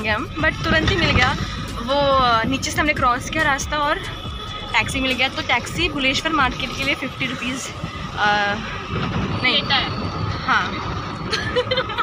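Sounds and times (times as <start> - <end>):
woman speaking: 0.0 - 4.1, 4.8 - 8.6, 9.4 - 10.8
car engine and road rumble: 0.0 - 12.0
steady pitched tone: 0.0 - 12.0.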